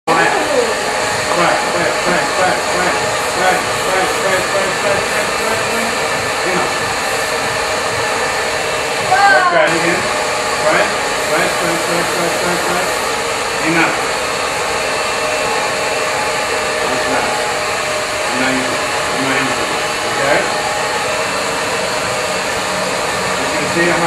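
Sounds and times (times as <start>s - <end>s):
hair dryer blowing: 0.0s - 24.0s.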